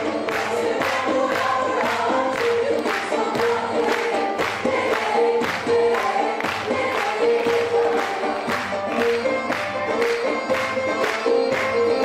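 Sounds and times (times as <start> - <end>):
mixed choir singing folk song: 0.0 - 11.6.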